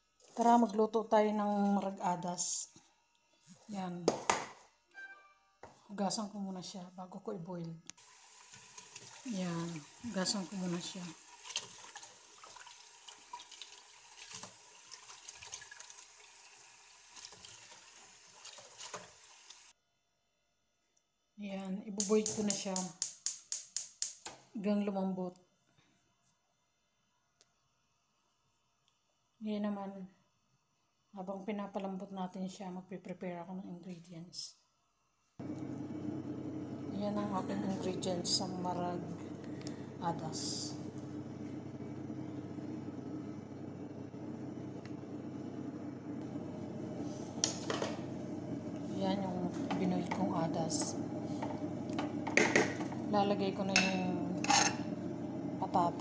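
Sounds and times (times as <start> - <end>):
utensil scraping pot: 48.8 - 55.1.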